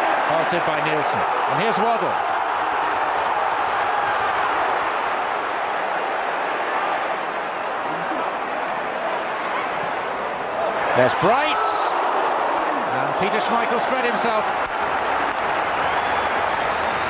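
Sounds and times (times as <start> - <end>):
stadium crowd hubbub: 0.0 - 17.0.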